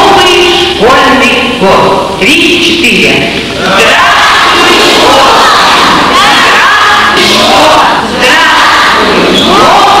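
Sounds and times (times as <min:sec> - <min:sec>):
children shouting: 0:03.6 - 0:10.0.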